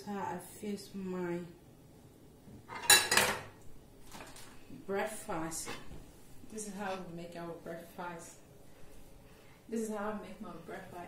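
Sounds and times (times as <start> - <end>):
cutlery clinking on ceramic dishes: 2.7 - 3.5.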